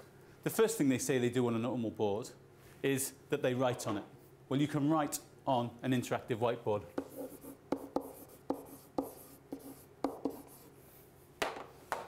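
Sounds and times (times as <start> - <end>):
pen tapping on whiteboard: 7.0 - 10.6
pen scratching on whiteboard: 7.0 - 10.8.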